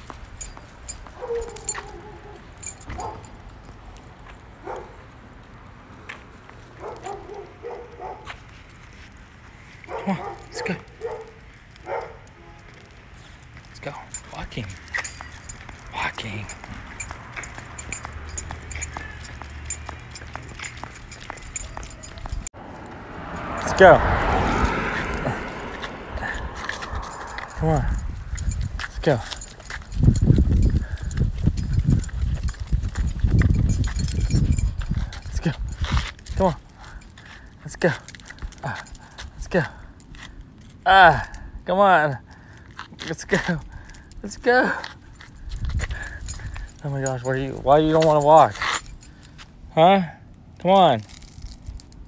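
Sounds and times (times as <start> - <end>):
footsteps on concrete: 0.0 - 5.0, 6.0 - 22.5, 23.4 - 40.7
dog collar and leash jingling: 0.0 - 49.6, 50.6 - 52.0
dog yipping and whining: 1.2 - 3.2.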